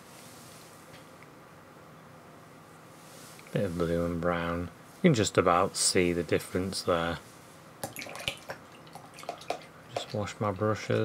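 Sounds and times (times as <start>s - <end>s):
brush knocking container: 7.8s - 10.3s
small water splashes: 7.8s - 10.3s.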